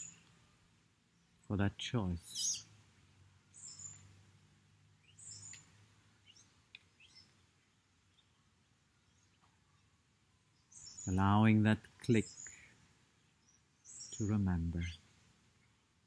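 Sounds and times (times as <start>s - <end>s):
faint high bird chirps: 0.0s - 0.3s, 2.2s - 2.7s, 3.5s - 4.2s, 5.0s - 15.8s.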